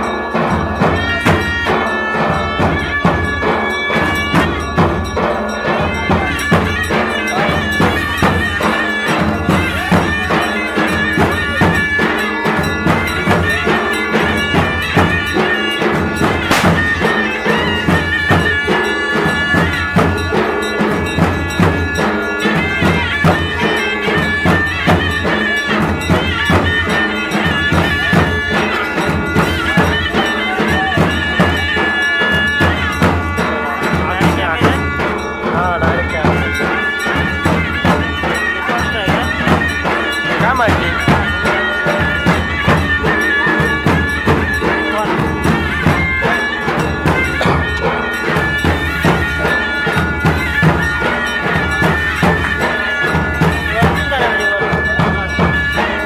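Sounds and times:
shrill double-reed pipe melody: 0:00.0 - 0:56.0
steady drumbeat: 0:00.0 - 0:56.0.

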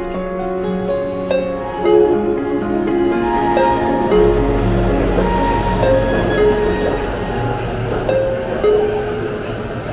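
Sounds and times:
background music: 0:00.0 - 0:09.9
electric train running past: 0:00.6 - 0:09.9.

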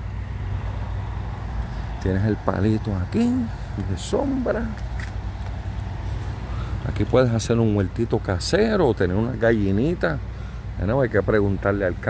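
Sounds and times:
constant hum: 0:00.0 - 0:12.0
low outdoor rumble: 0:00.0 - 0:12.0.

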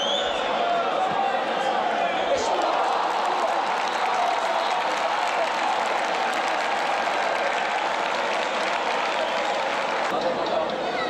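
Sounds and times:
stadium crowd cheering and applauding: 0:00.0 - 0:11.0.

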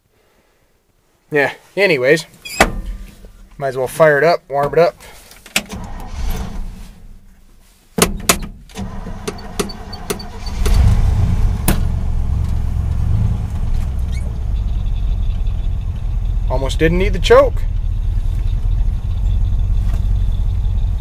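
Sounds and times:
starter cranking engine: 0:08.8 - 0:12.0
truck engine idling: 0:08.8 - 0:21.0.

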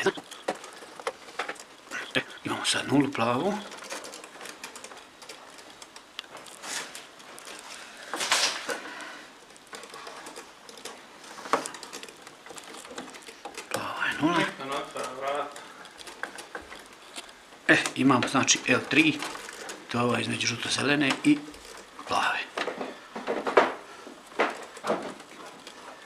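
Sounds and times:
person speaking: 0:00.0 - 0:00.3, 0:01.9 - 0:03.8, 0:13.6 - 0:15.8, 0:17.6 - 0:22.6.

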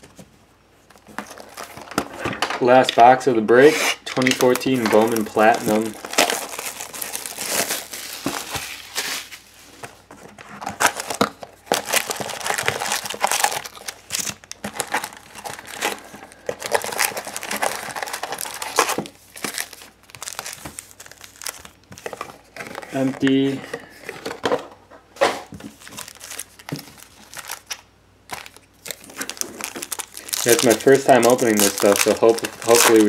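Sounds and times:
foil packs crinkling and rustling: 0:00.9 - 0:24.6, 0:25.4 - 0:33.0.

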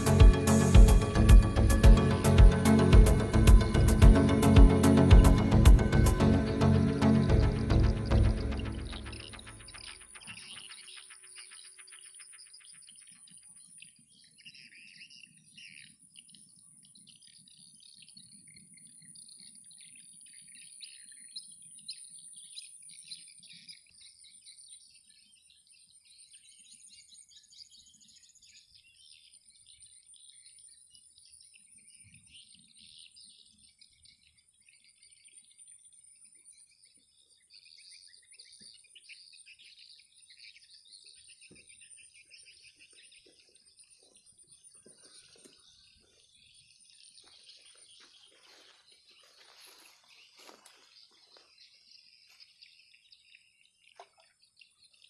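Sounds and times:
small birds chirping: 0:00.0 - 0:55.0.

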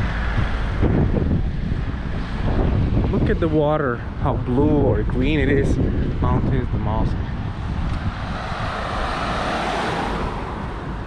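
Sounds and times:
steady low rumble: 0:00.0 - 0:11.0
motor vehicle passing: 0:07.1 - 0:11.0.

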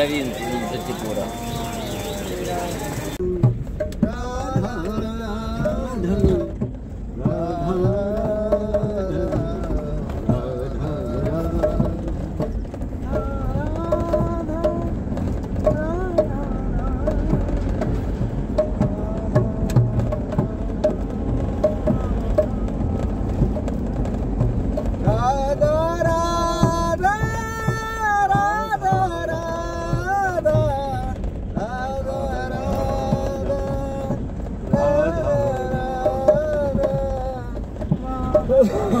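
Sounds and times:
person singing devotional song: 0:00.0 - 0:23.9, 0:25.0 - 0:39.0
drum accompaniment: 0:00.0 - 0:39.0
low steady vehicle rumble: 0:00.0 - 0:39.0.

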